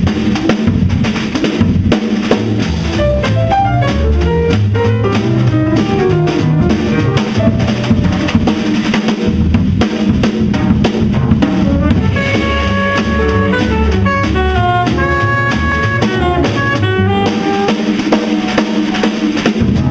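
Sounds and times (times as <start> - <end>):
double bass: 0.0 - 18.1, 19.5 - 19.9
drum kit: 0.0 - 19.9
saxophone playing: 2.9 - 8.7, 11.6 - 19.3.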